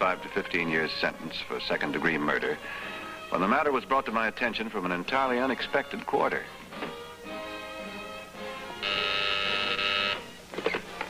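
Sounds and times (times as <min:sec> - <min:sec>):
telephone buzzer: 0:08.8 - 0:10.3.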